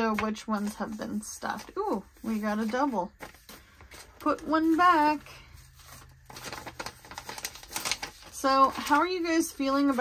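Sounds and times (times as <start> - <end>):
paper rustling and crinkling: 0.0 - 10.0.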